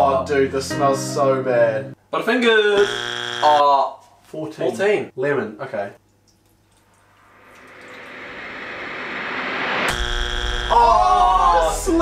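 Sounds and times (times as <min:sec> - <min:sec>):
rising whoosh of hiss: 0:07.3 - 0:10.0.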